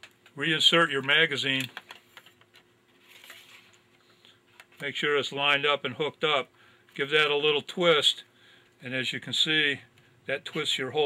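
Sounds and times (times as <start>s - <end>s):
man speaking: 0.4s - 1.8s, 4.8s - 8.2s, 8.8s - 11.0s.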